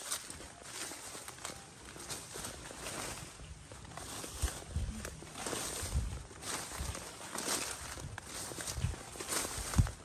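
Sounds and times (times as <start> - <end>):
footsteps through tall grass: 0.0 - 10.0
leaves and stems rustling: 0.0 - 10.0.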